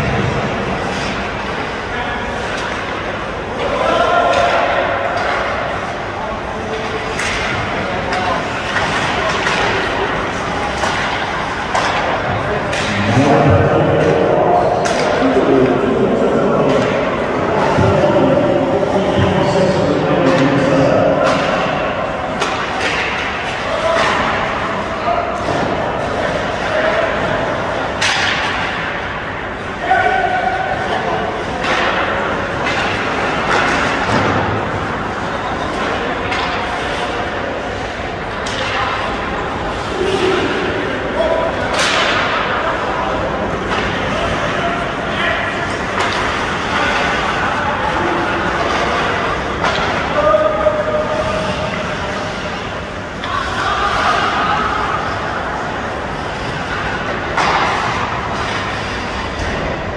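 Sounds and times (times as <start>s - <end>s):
hockey sticks and puck cracking: 2.4s - 13.2s, 13.9s - 15.8s, 20.1s - 59.9s
players and spectators shouting: 39.8s - 57.0s.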